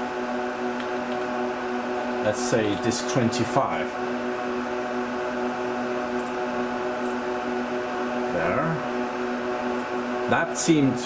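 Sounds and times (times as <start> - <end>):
server cooling fans humming: 0.0 - 11.0.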